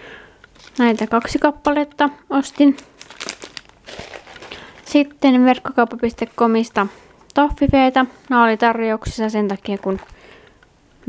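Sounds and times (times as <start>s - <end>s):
candy packaging crinkling: 0.4s - 10.4s.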